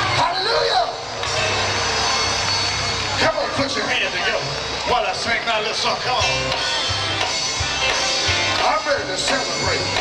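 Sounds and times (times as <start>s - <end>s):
continuous low bass: 0.0s - 10.0s
gospel band music: 0.0s - 10.0s.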